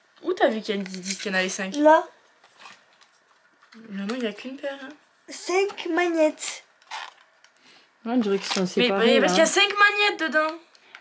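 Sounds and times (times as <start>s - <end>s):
woman's voice: 3.8s - 6.6s, 8.0s - 10.6s.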